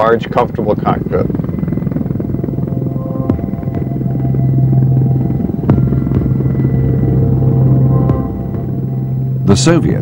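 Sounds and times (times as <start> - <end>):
helicopter flying low: 0.0 - 10.0.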